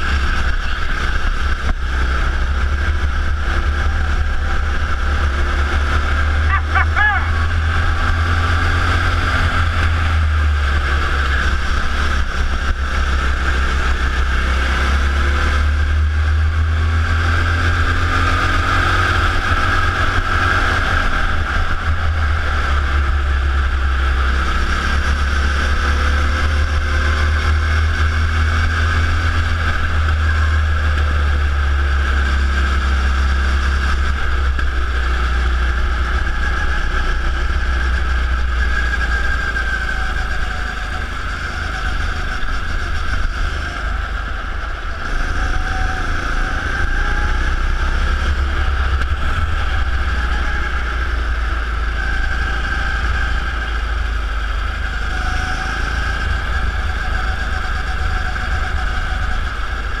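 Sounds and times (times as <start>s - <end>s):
go-kart engine racing: 0.0s - 60.0s.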